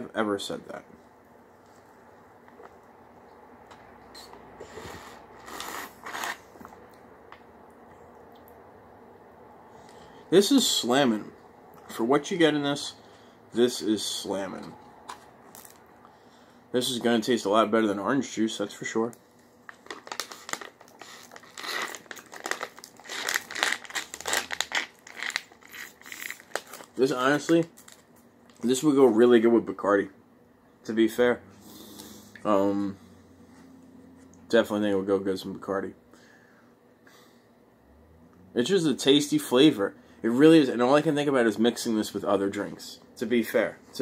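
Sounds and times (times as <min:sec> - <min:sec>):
foil pouch crinkling: 0:19.7 - 0:28.6.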